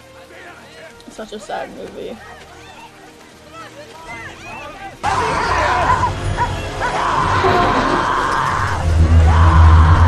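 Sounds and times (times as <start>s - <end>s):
dramatic orchestral music: 0.0s - 10.0s.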